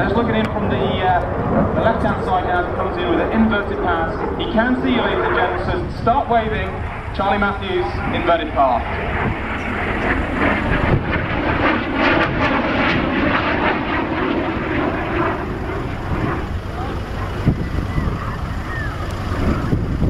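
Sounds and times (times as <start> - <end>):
jet engine roar with crackle: 0.0 - 20.0.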